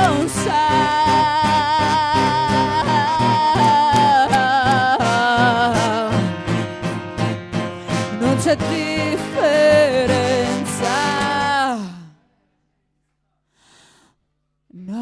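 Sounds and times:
singer holding long vibrato note: 0.0 - 12.1
live rock band playing: 2.1 - 11.5.

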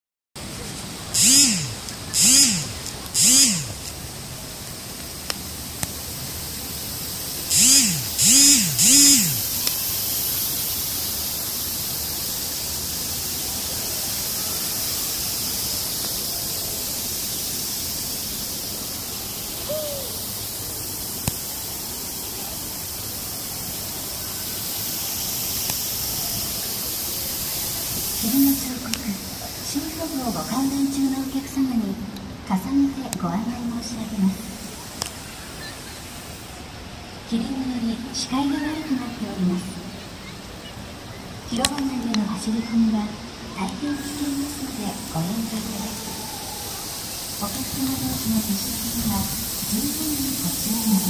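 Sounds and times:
mist nozzles spraying with a hiss: 0.4 - 51.0
short rising and falling tones: 1.1 - 3.8, 7.5 - 9.5.

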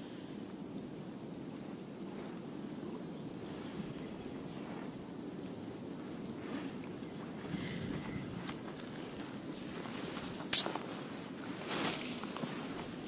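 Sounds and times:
low outdoor background: 0.0 - 13.0.

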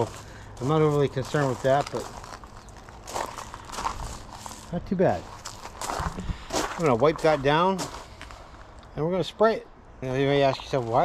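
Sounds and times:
footsteps on gravel: 0.0 - 8.8, 10.5 - 11.0.

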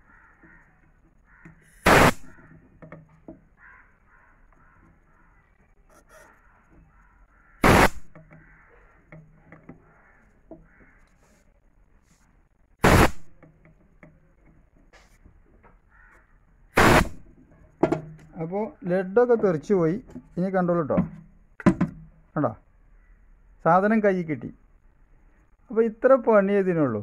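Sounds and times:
crow cawing: 0.0 - 11.4, 15.6 - 17.3, 22.9 - 23.3.

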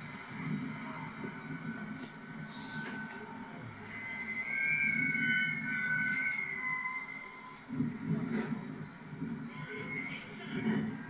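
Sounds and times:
thin steady high tone: 0.0 - 8.0
steam locomotive exhaust rumble: 0.0 - 11.0.

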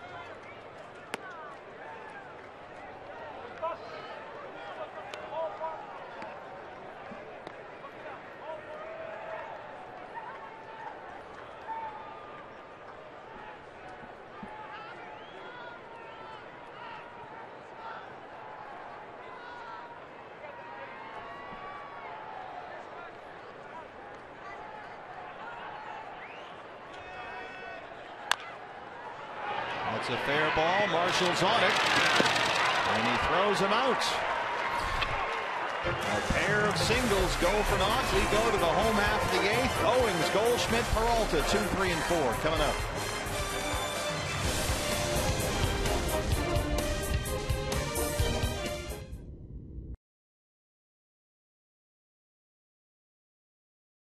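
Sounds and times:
crowd murmur: 29.7 - 46.6
voices shouting: 35.6 - 44.3.

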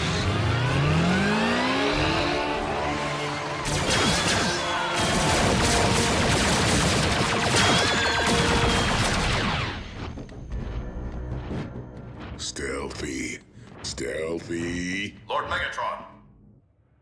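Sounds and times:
dramatic music score: 0.0 - 14.5
energy blaster fire: 3.6 - 10.0
explosions: 3.7 - 10.2.

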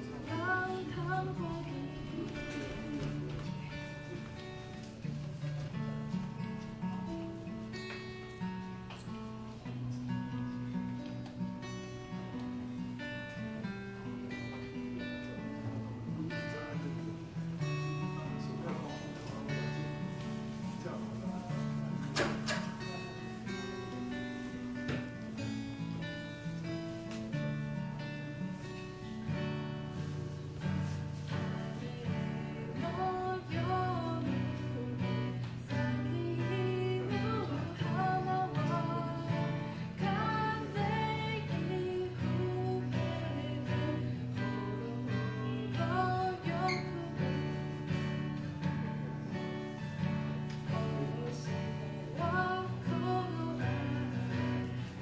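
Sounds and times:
young woman singing: 0.0 - 4.6, 30.3 - 49.0, 50.2 - 55.0
acoustic guitar chords: 0.0 - 55.0.

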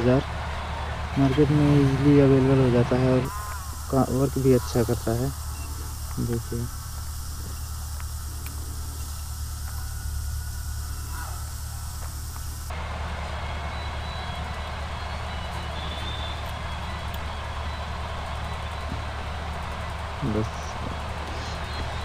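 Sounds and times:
constant hiss: 0.0 - 22.0
low hum: 0.0 - 22.0.

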